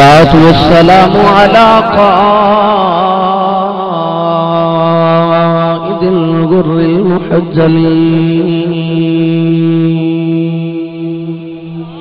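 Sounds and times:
man chanting through microphone: 0:00.0 - 0:12.0.

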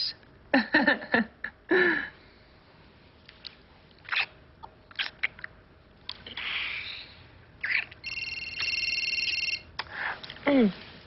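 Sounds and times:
breaths: 0:01.7 - 0:02.8
wet kissing sounds: 0:04.0 - 0:05.5
electronic telephone ring: 0:08.0 - 0:09.7.

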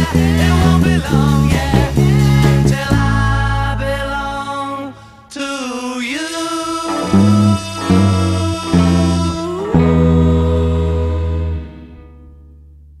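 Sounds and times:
bass guitar notes: 0:00.0 - 0:05.2, 0:06.9 - 0:13.0
recorded song: 0:00.0 - 0:13.0
held sung note: 0:06.6 - 0:12.0.

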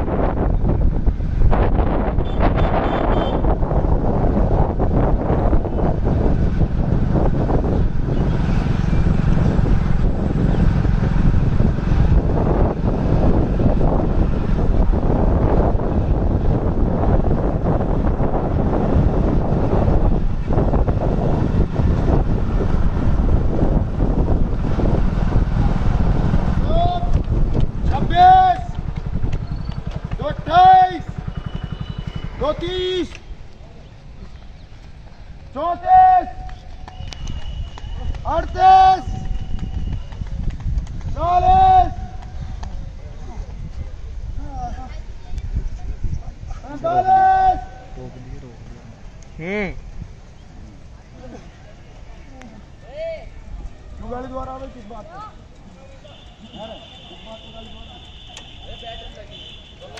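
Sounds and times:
wind buffeting microphone: 0:00.0 - 0:51.7
man shouting: 0:26.6 - 0:27.2, 0:27.9 - 0:28.8, 0:30.2 - 0:31.1, 0:32.4 - 0:33.2, 0:35.6 - 0:36.5, 0:38.2 - 0:39.2, 0:41.2 - 0:42.1, 0:46.6 - 0:48.0.

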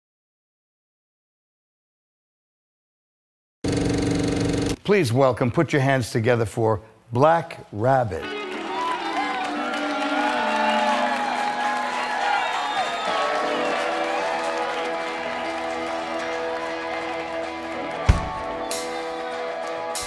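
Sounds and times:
electric guitars holding chords: 0:08.2 - 0:20.0
keyboard chords: 0:08.2 - 0:20.0
drum kit playing: 0:15.0 - 0:20.0
drum hit: 0:18.0 - 0:18.5.

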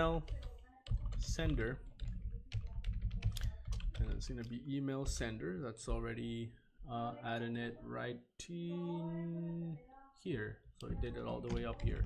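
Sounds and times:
computer keyboard typing: 0:00.0 - 0:05.2, 0:10.8 - 0:12.0.

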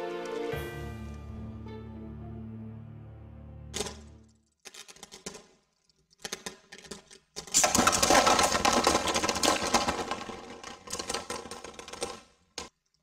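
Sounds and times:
small hard objects rattling: 0:03.8 - 0:13.0.

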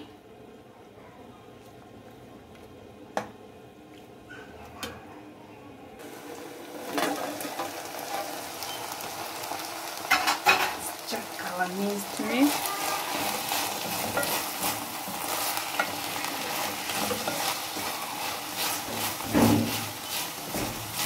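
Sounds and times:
meat sizzling in a metal pan: 0:06.0 - 0:21.0
pot boiling and bubbling: 0:06.0 - 0:21.0.

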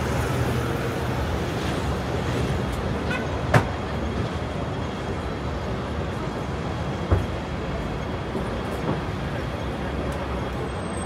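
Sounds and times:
bus engine hum passing: 0:00.0 - 0:11.0
city street traffic: 0:00.0 - 0:11.0.

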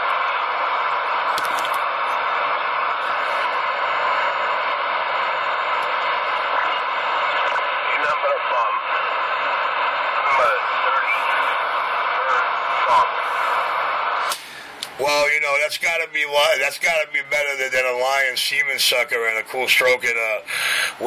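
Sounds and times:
radio static hiss: 0:00.0 - 0:21.0
faint warbling radio voices: 0:01.9 - 0:14.2.

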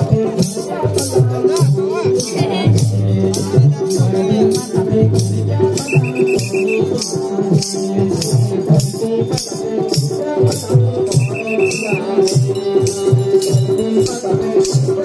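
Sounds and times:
shaken rattle rhythm: 0:00.2 - 0:15.0
short high warbling note: 0:05.9 - 0:06.9.

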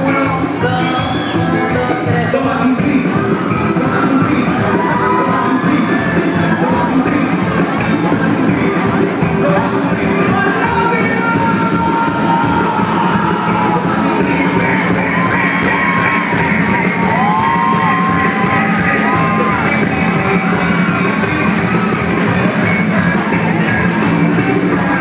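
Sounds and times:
men singing: 0:00.0 - 0:20.5
live pop band: 0:00.0 - 0:25.0.

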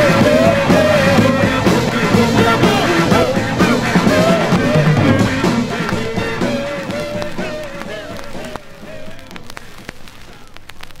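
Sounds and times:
soul song: 0:00.0 - 0:10.9
vinyl crackle and pops: 0:00.0 - 0:11.0.

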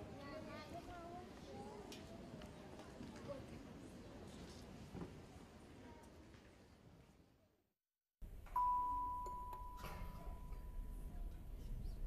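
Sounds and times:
bell-like chime: 0:08.5 - 0:11.1.

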